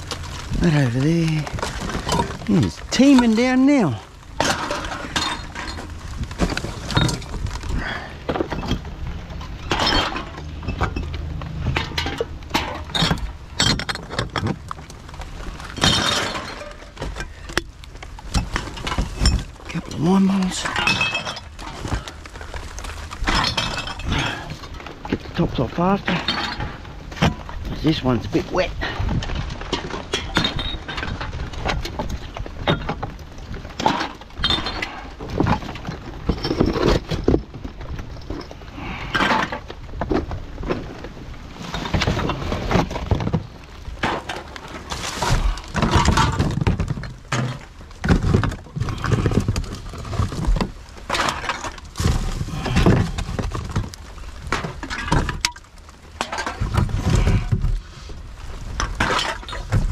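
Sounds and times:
cans and bottles clattering: 0.0 - 14.7, 15.6 - 27.6, 28.8 - 39.7, 41.6 - 55.6
plastic bags rustling: 0.0 - 59.9.

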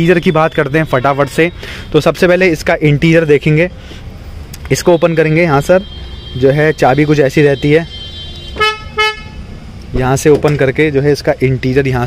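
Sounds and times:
car horn chirps: 4.7 - 9.5.

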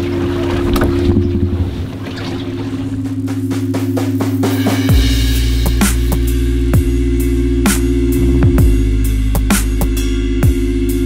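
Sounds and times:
water rushing past boat: 0.0 - 4.9
steady low hum: 0.0 - 11.0.

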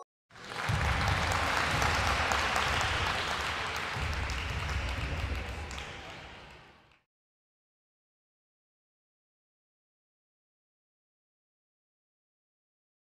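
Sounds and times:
crowd applause: 0.3 - 7.0.

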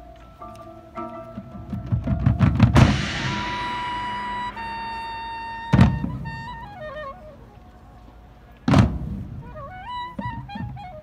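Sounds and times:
marching band playing: 1.0 - 7.0
low drum hits: 1.4 - 6.7.

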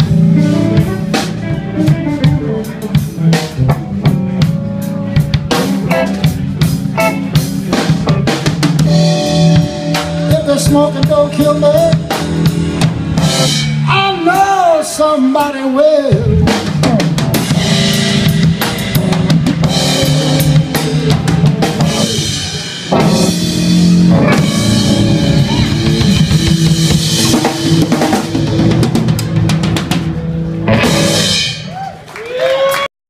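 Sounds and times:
drum kit with cymbal crashes: 0.0 - 14.6, 16.1 - 31.9
electric guitar: 0.0 - 15.0, 16.1 - 32.9
bass guitar: 0.0 - 32.9.

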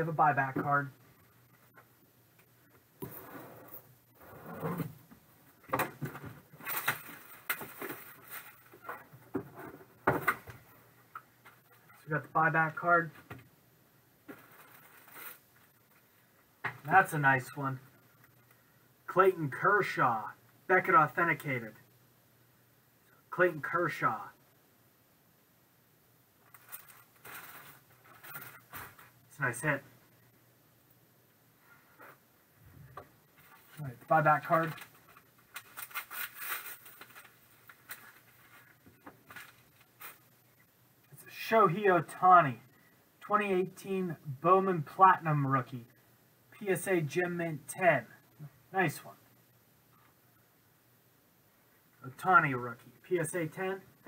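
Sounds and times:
plastic bag crinkling: 34.6 - 38.7
paper envelope rustling: 34.6 - 40.2.

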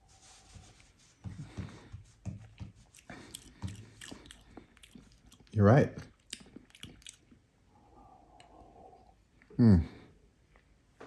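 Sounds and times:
wet mouth sounds: 2.9 - 7.4.

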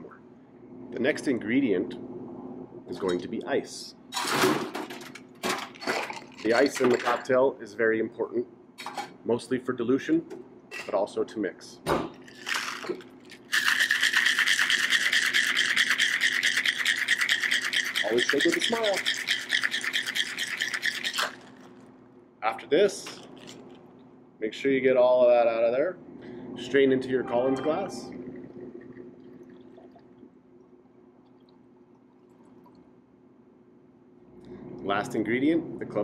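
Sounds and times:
steady low hum: 0.0 - 36.0
ice rattling in cocktail shaker: 5.8 - 7.1, 12.2 - 21.8
thin stream of liquid pouring: 12.3 - 21.7.

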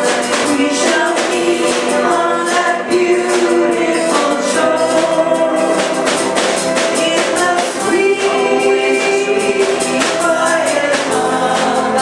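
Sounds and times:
instrumental accompaniment with beat: 0.0 - 12.0
women singing gospel song: 0.0 - 12.0.

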